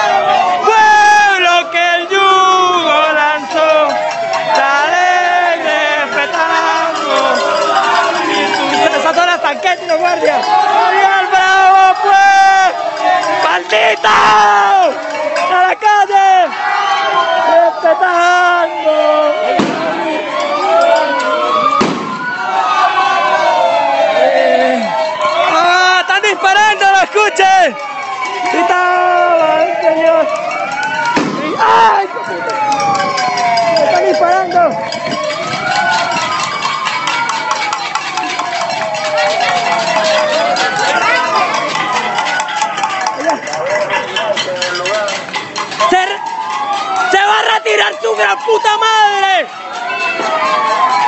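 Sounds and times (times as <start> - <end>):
crowd shouting: 0.0 - 51.0
raised voices: 0.0 - 51.0
siren-like wails: 0.0 - 51.0
sharp bangs: 19.5 - 20.1, 21.8 - 22.4, 31.1 - 31.6.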